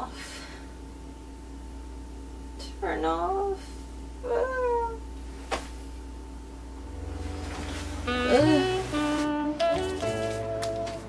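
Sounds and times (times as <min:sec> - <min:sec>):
woman's high-pitched whine: 0:04.2 - 0:05.0, 0:06.9 - 0:10.2.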